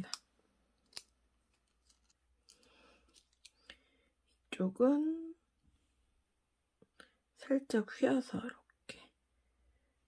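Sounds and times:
faint handling noise: 0.0s - 3.7s
soft rustle of paper: 0.8s - 3.7s.

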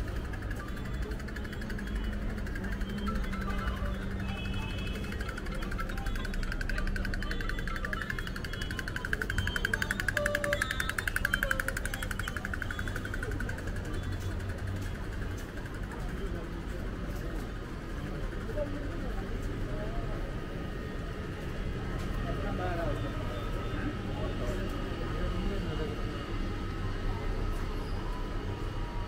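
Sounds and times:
music: 0.0s - 14.5s
street noise hum: 0.0s - 29.0s
voices of passers-by: 0.0s - 29.0s.

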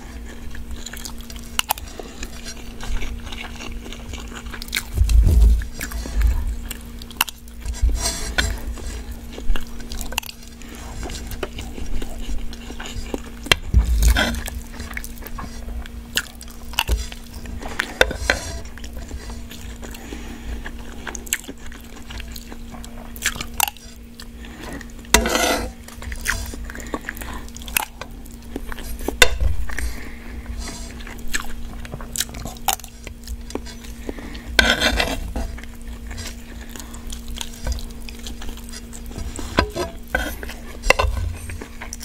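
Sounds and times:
chewing and biting noodles: 0.0s - 7.7s, 8.3s - 18.0s, 18.6s - 25.1s, 30.9s - 42.0s
steady low hum: 0.0s - 42.0s
metal spoon scraping a pan: 25.1s - 26.5s, 34.6s - 36.4s, 38.6s - 41.6s.

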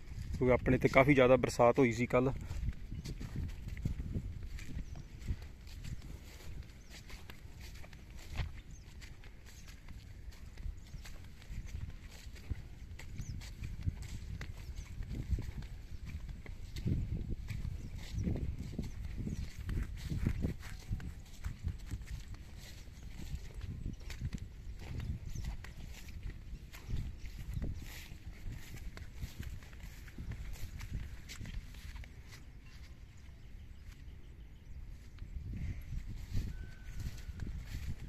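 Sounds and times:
footsteps on soft wet soil: 0.0s - 38.0s.

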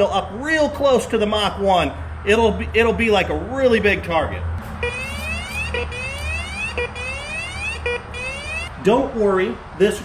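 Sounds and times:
metal detector beep and electronic sweep: 4.8s - 8.7s.

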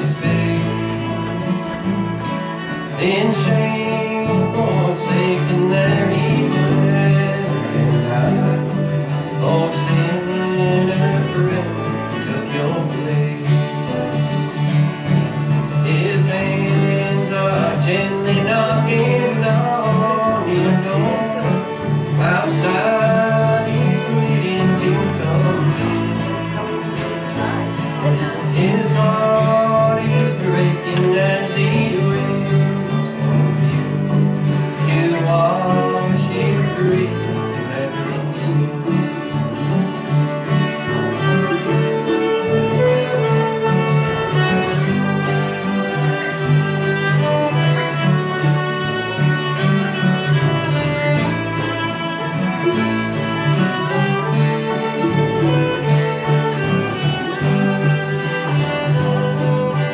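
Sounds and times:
fiddle melody: 0.0s - 59.9s
strummed acoustic guitars: 0.0s - 59.9s.

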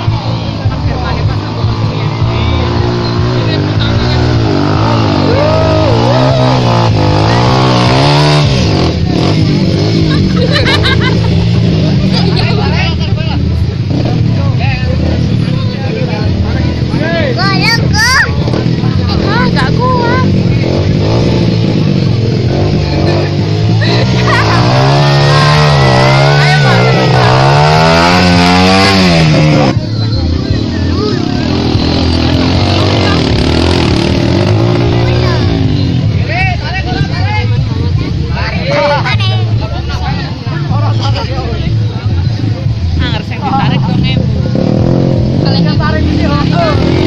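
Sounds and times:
motorcycle engine revving: 0.0s - 47.0s
crowd shouting: 5.0s - 8.4s, 23.8s - 29.7s.

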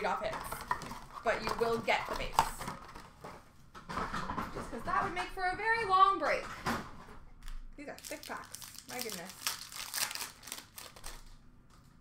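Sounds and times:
faint wrapper and card rustling: 7.4s - 12.0s.

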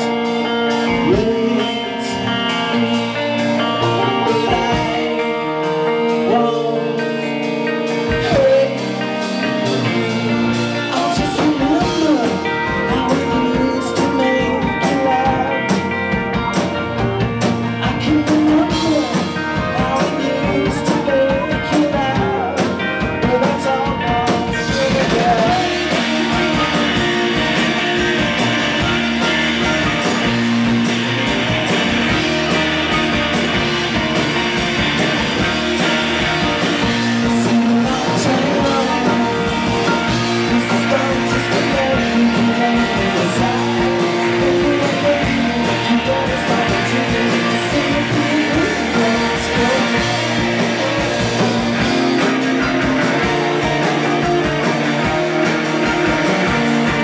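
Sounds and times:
electric guitars: 0.0s - 57.0s
rock band playing live: 0.0s - 57.0s
steady drum beat: 0.0s - 57.0s.

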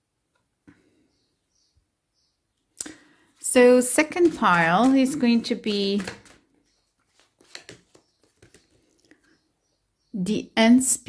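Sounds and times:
cards shuffling and rustling: 3.9s - 9.4s.

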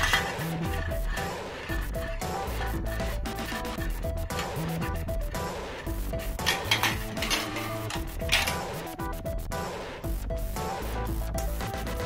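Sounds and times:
background music: 0.0s - 12.0s
marbles clattering through track: 6.4s - 8.6s.

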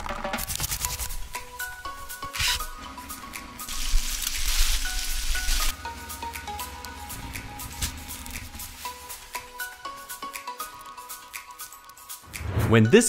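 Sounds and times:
light background music: 0.0s - 13.0s
steady hiss: 3.6s - 5.8s.

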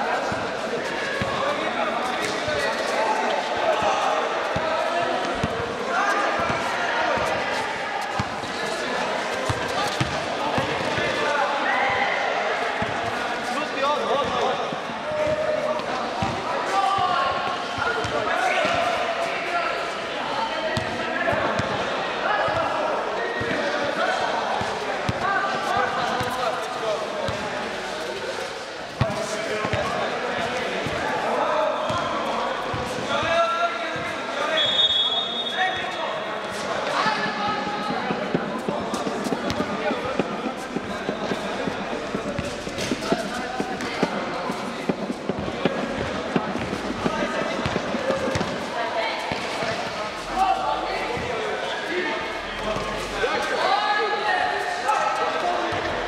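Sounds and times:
basketball dribbling: 9.5s - 10.9s, 36.8s - 49.9s
players calling out: 30.8s - 53.7s.

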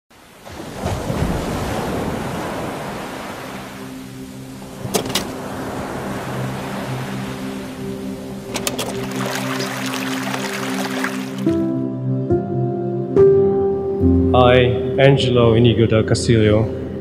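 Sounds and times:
ocean waves breaking: 0.2s - 11.7s
sharp clicks: 4.9s - 5.4s.

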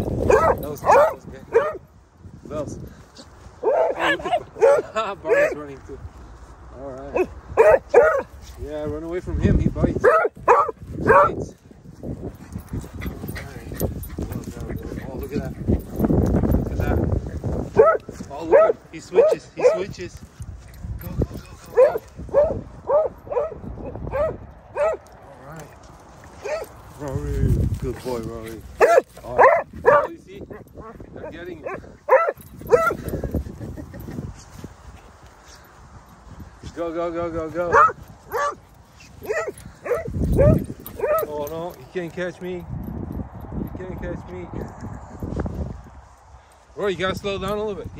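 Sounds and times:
dog barking: 0.2s - 1.8s, 3.6s - 5.6s, 7.1s - 8.3s, 10.0s - 11.4s, 17.8s - 19.9s, 21.7s - 25.0s, 26.4s - 26.7s, 28.8s - 30.6s, 31.6s - 33.0s, 37.7s - 38.6s, 39.2s - 41.3s
dogs scuffling while playing: 12.0s - 18.3s.

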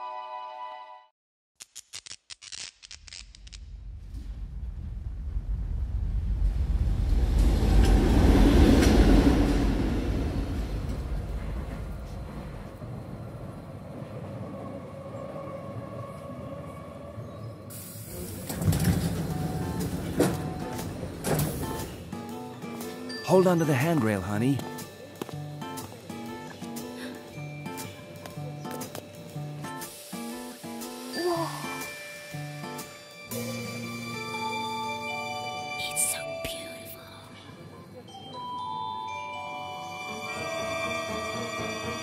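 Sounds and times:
subway train rumble: 4.2s - 22.8s, 40.0s - 42.0s
sudden hiss: 29.7s - 32.2s.

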